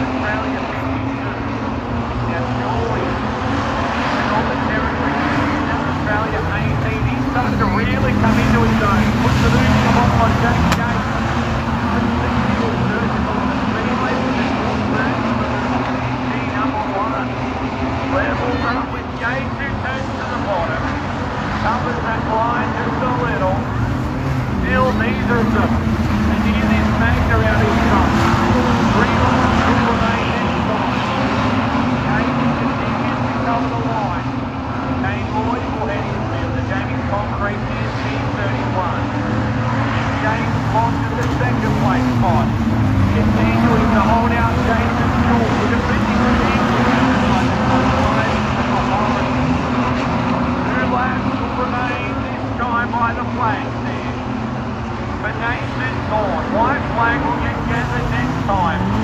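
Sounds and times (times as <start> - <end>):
race car engines revving: 0.0 - 59.0.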